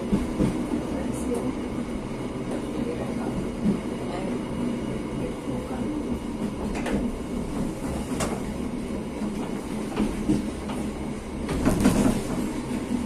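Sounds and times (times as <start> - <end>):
train rumble: 0.0 - 13.0
train wheels clacking: 9.2 - 13.0.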